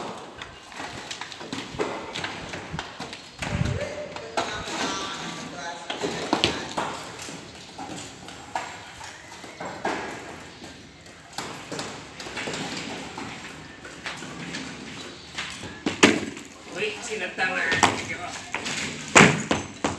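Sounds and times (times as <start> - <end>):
masonry clattering down: 15.4 - 19.9.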